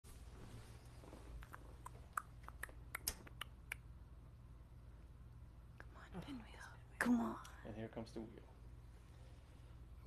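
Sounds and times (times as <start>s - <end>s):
low steady hum: 0.1s - 10.0s.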